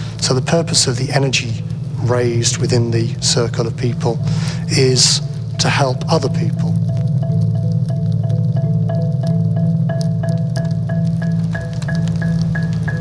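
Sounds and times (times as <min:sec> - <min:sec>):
low sustained drone: 0:00.0 - 0:13.0
bell-like mallet percussion: 0:04.0 - 0:13.0.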